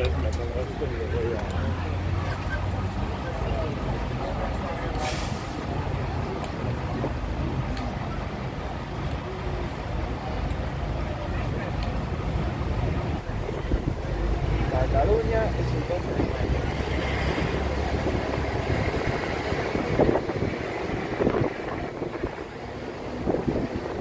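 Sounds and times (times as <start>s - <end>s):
bus diesel engine running: 0.0s - 24.0s
street noise: 0.0s - 24.0s
brief hiss: 5.0s - 5.7s.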